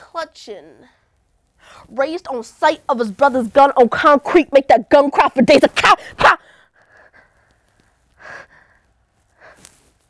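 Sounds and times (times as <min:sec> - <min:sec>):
woman shouting: 0:03.6 - 0:06.4
short breaths: 0:06.4 - 0:10.0.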